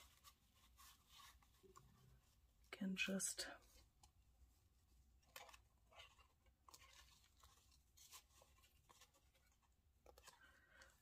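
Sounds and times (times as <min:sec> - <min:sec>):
paper rustling: 0:00.0 - 0:02.6, 0:03.6 - 0:11.0.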